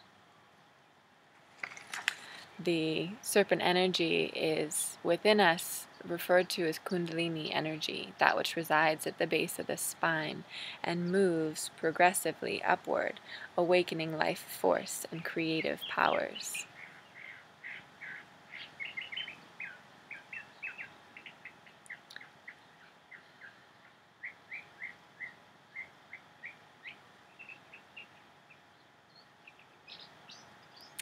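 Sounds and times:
faint bird chirping: 14.8s - 31.0s.

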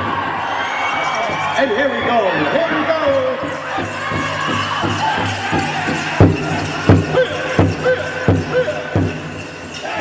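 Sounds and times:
large drum beating: 3.5s - 9.6s.

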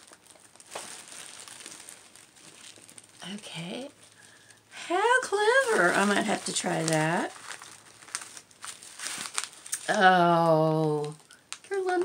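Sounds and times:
shaker card crinkling and rattling: 5.1s - 10.0s.

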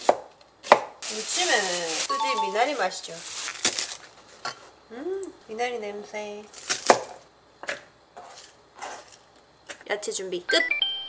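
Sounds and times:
knife chopping stalks on board: 0.0s - 1.0s.

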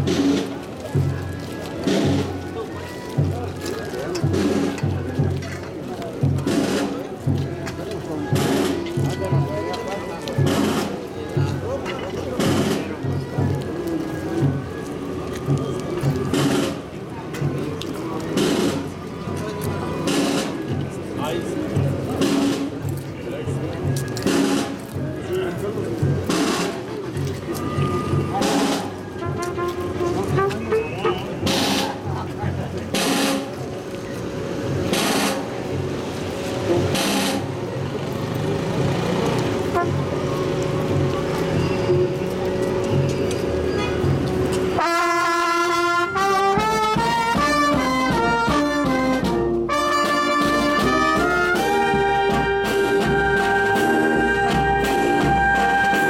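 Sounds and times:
brass band playing a march: 0.0s - 1.2s, 1.8s - 3.4s, 4.2s - 5.3s, 6.2s - 7.0s, 8.3s - 11.0s, 12.4s - 12.8s, 15.4s - 16.8s, 22.2s - 22.7s, 24.2s - 24.8s, 26.3s - 26.7s, 27.7s - 32.1s, 32.9s - 33.6s, 34.4s - 37.5s, 39.5s - 42.2s, 43.7s - 56.0s
crowd voices: 0.0s - 56.0s.

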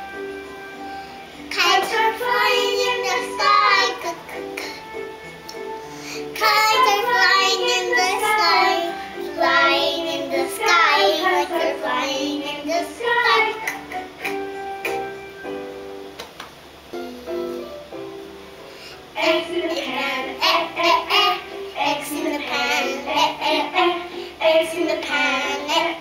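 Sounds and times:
girl singing: 1.5s - 4.9s, 6.0s - 14.5s, 19.1s - 26.0s.

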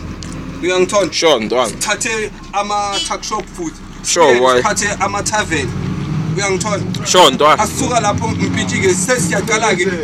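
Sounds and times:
bus engine humming: 0.0s - 10.0s
man talking: 0.6s - 10.0s.

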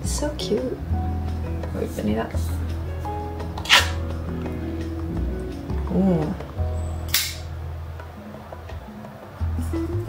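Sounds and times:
background music: 0.0s - 10.0s
metal tin seal popping open: 3.6s - 4.0s, 7.1s - 7.5s.

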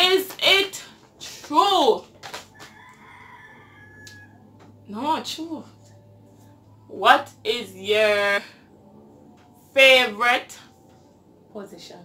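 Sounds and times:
rooster crowing faintly: 2.6s - 4.6s.

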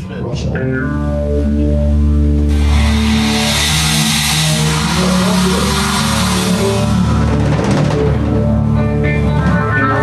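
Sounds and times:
bass guitar: 0.0s - 10.0s
electric guitar: 0.4s - 10.0s
bright wash of noise: 2.4s - 8.5s.

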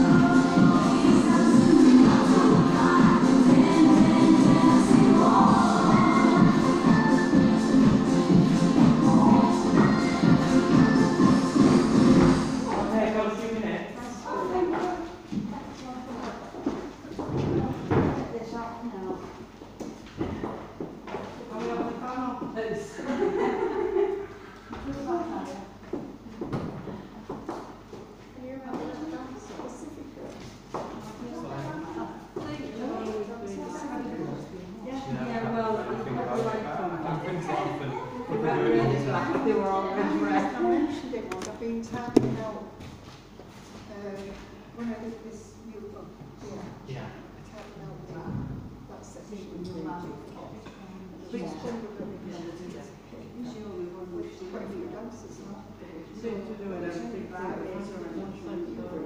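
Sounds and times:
people chatting in a hall: 0.0s - 59.0s
voices in a large room: 0.0s - 59.0s
footsteps on wooden floor: 16.2s - 18.3s.

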